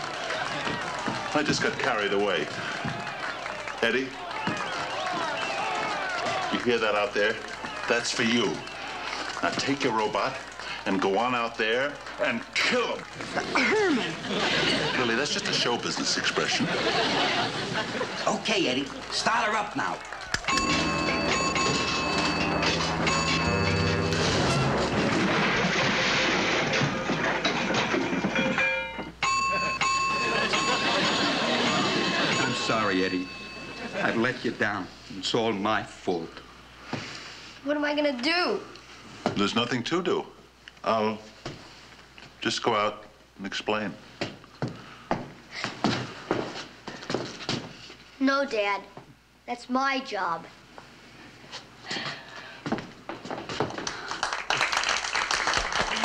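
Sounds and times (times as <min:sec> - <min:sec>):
steady electronic tones: 0:20.5 - 0:25.6
rising stepped whine: 0:20.5 - 0:27.2
harsh rattling noise: 0:20.5 - 0:28.7.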